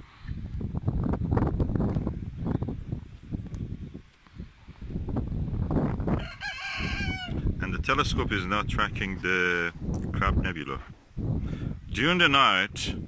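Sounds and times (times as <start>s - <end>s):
low rumbling on microphone: 0.0s - 13.0s
rooster crowing: 6.1s - 7.4s.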